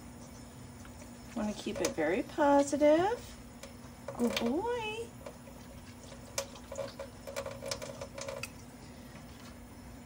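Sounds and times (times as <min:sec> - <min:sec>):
liquid splashing in a sink: 0:00.0 - 0:10.0.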